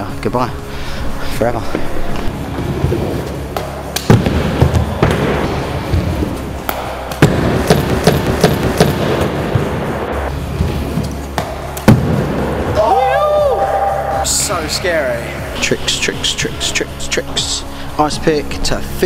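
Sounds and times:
background music with steady beat: 0.0s - 19.0s.

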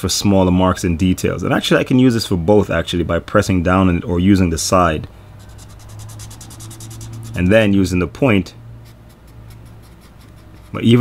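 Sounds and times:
marker scribbling on paper: 5.4s - 7.7s, 8.8s - 11.0s.

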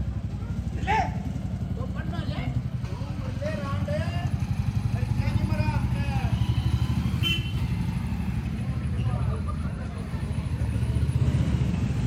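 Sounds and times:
motorcycle engine rumbling: 0.0s - 12.0s.

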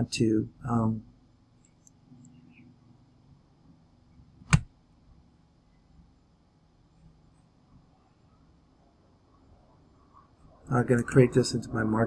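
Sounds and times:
loud sharp click: 4.5s - 4.7s.

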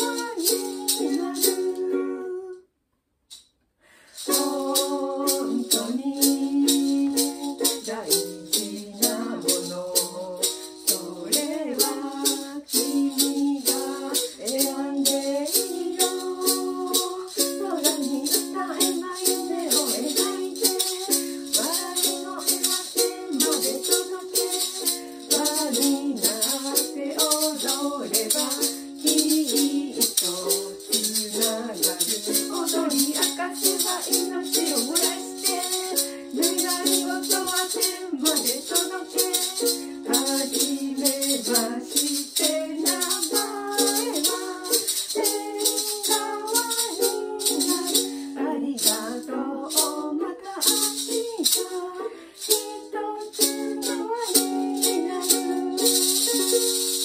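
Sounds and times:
maracas shaking: 0.0s - 2.6s, 3.3s - 57.0s
strummed ukulele: 0.0s - 2.6s, 4.2s - 57.0s
two voices singing: 0.0s - 2.6s, 4.2s - 57.0s.

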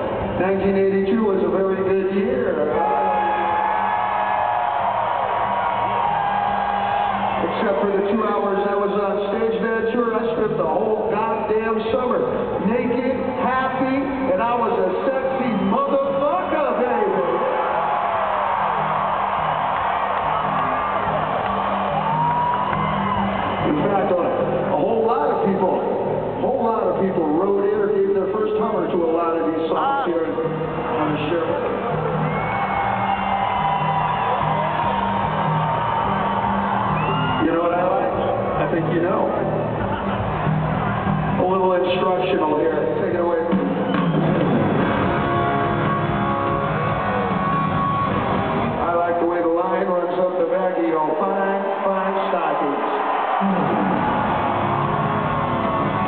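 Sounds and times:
arena crowd noise: 0.0s - 56.0s
rock band playing riff: 43.5s - 48.8s.

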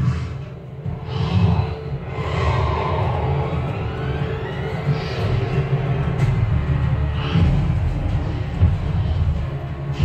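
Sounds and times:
cinematic soundtrack over speakers: 0.0s - 10.0s.

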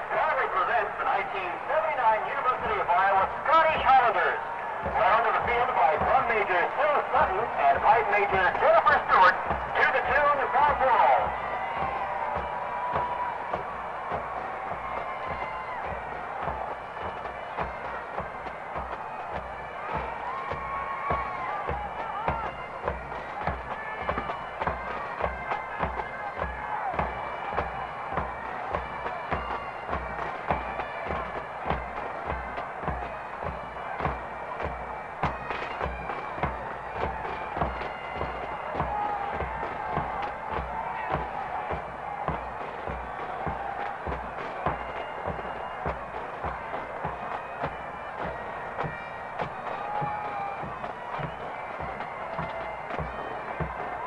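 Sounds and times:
marching drum beat: 0.0s - 54.0s
bagpipes playing a tune: 5.0s - 54.0s.

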